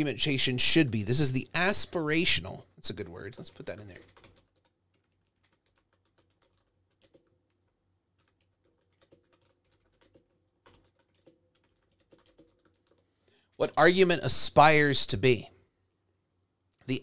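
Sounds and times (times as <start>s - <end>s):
faint typing on keyboard: 3.0s - 13.7s.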